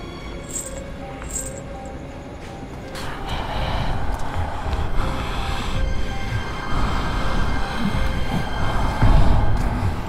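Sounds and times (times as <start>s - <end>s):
rumbling low drone: 2.9s - 10.0s.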